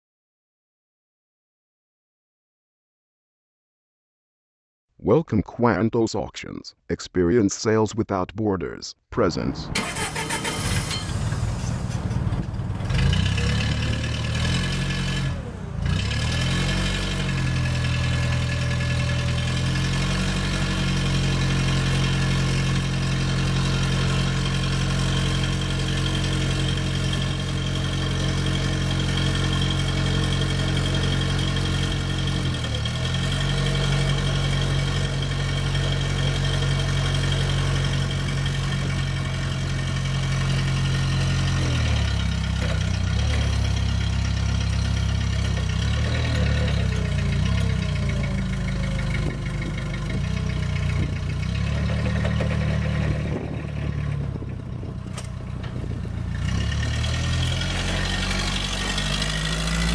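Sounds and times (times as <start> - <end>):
forklift engine running: 9.7 - 59.9.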